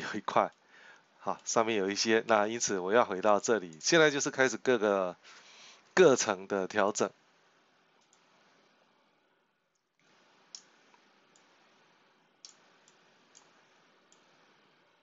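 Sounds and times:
low steady hiss: 0.0s - 15.0s
computer mouse clicks: 8.0s - 8.3s, 9.7s - 11.8s, 12.4s - 14.5s.

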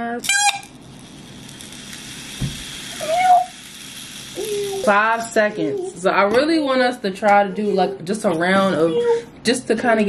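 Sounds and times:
balls rolling down spiral track: 0.2s - 6.1s.

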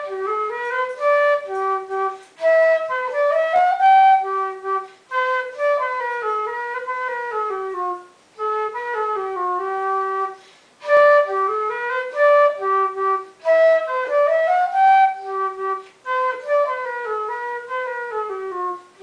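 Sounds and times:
solo flute playing a minuet: 0.0s - 19.0s.

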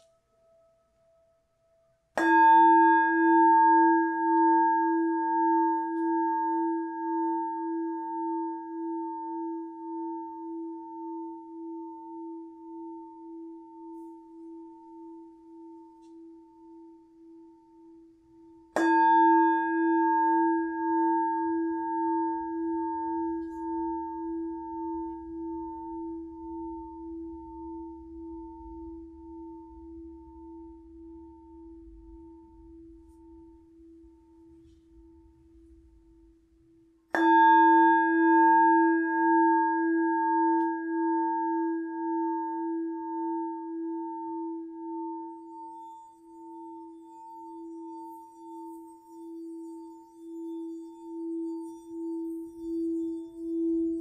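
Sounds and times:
singing bowl ringing: 0.0s - 36.2s, 37.1s - 54.0s.

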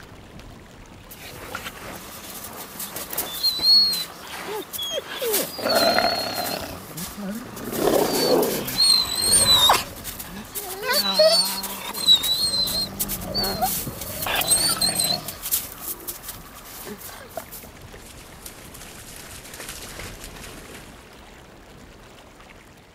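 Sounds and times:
wolves snarling and growling: 1.1s - 17.6s
wolves whining and squealing: 1.2s - 17.6s.

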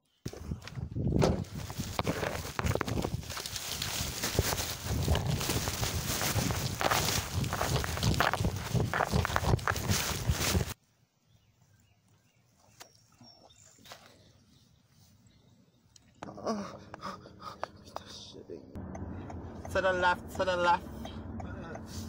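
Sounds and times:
footsteps: 0.3s - 10.8s
handheld camera rustling and knocking: 0.3s - 10.8s.

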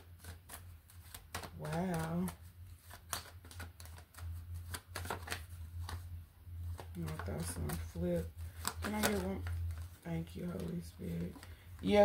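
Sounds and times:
cards being shuffled: 0.0s - 12.0s
low steady hum: 0.0s - 12.0s.

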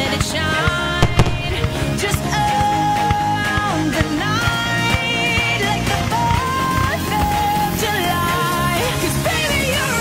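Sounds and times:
fireworks bangs: 1.0s - 2.7s.

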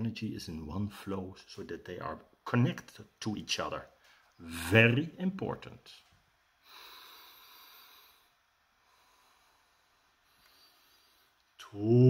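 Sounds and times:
man breathing in through nose: 6.6s - 11.4s.

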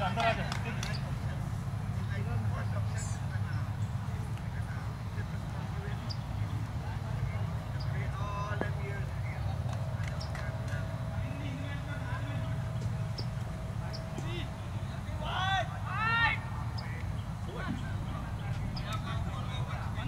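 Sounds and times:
distant voices: 0.0s - 20.0s
steady low rumble: 0.0s - 20.0s.

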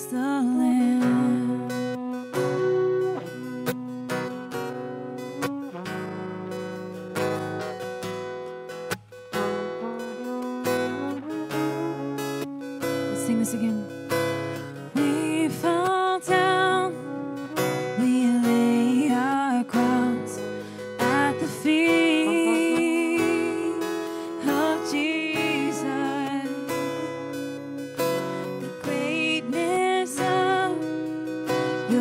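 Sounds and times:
woman singing: 0.0s - 2.0s, 13.0s - 14.2s, 14.9s - 27.3s, 28.5s - 32.0s
acoustic guitar strumming: 0.0s - 32.0s.

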